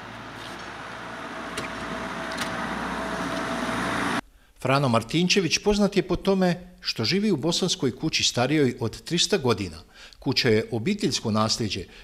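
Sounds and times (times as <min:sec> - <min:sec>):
car road noise: 0:00.0 - 0:04.2.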